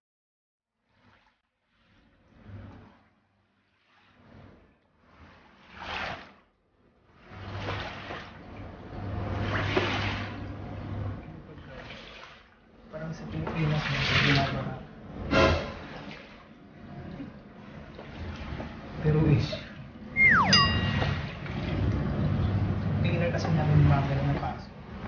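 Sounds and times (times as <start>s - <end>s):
squeegee swishing water: 0.7s - 25.0s.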